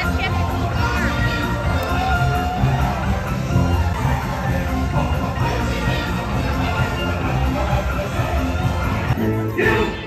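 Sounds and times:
loud parade music: 0.0s - 10.0s.

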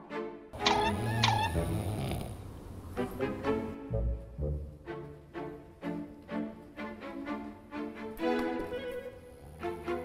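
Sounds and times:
person snoring: 0.8s - 2.4s.

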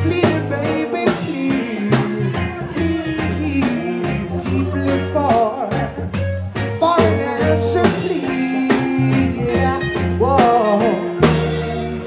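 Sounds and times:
deep bass notes: 0.0s - 12.0s
drum kit: 0.0s - 12.0s
keyboard: 0.0s - 12.0s
sliding melody line: 0.0s - 12.0s.

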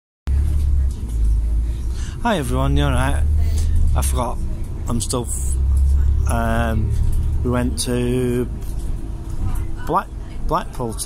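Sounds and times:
bus engine rumble: 0.3s - 11.0s
road noise: 0.3s - 11.0s.

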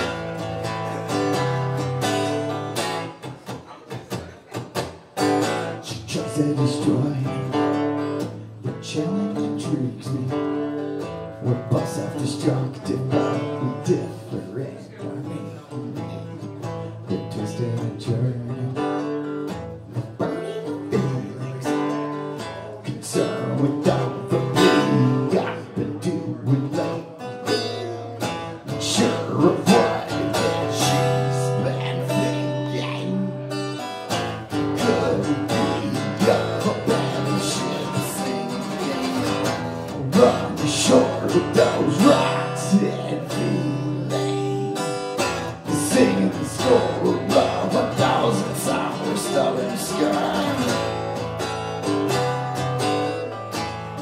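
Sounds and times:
acoustic guitar strumming chords: 0.0s - 54.0s.

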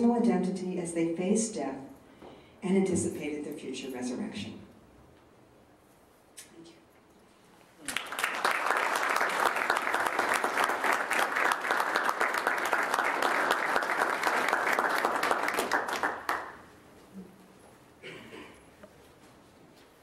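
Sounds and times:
audience applauding: 7.8s - 16.7s.

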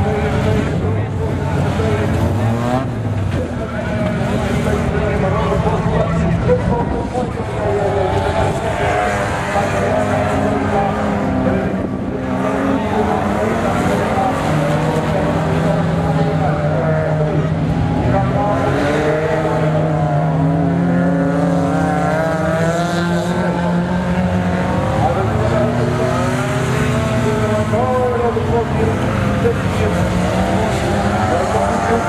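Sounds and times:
race car engines revving: 0.0s - 32.0s.

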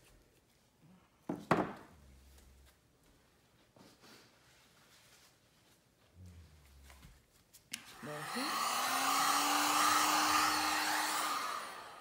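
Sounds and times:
knocks on a hard surface: 1.3s - 1.8s.

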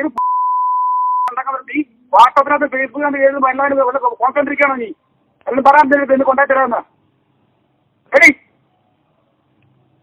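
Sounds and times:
person speaking: 0.0s - 0.2s, 1.3s - 7.2s
censor bleep: 0.2s - 1.3s.

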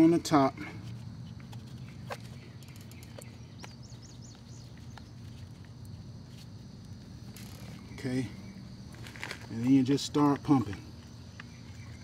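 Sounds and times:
steady low hum: 0.0s - 12.0s
bird chirping: 1.5s - 5.7s, 7.3s - 9.7s, 10.9s - 12.0s.

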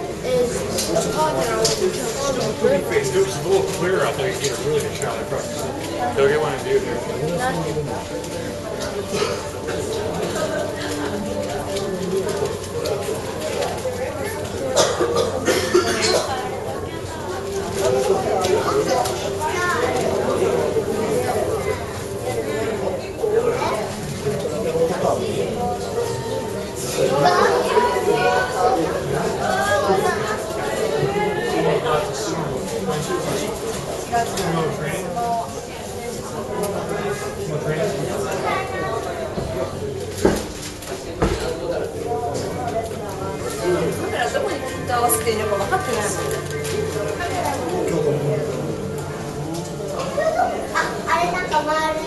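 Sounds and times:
background chatter: 0.0s - 52.0s
people talking: 0.0s - 52.0s
short cough: 9.1s - 9.4s, 14.8s - 16.4s.

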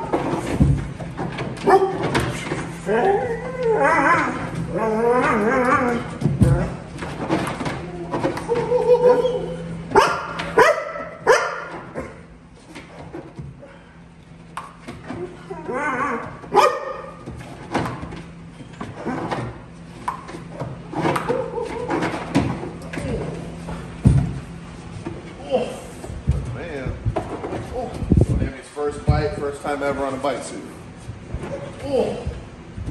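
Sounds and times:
dog barking: 1.6s - 2.0s, 9.9s - 12.2s, 16.5s - 17.2s
dog whining: 1.6s - 12.2s, 15.1s - 17.2s, 20.6s - 22.2s.

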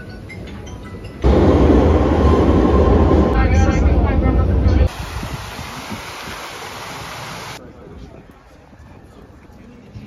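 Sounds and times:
fountain jets splashing into basin: 4.9s - 7.6s.

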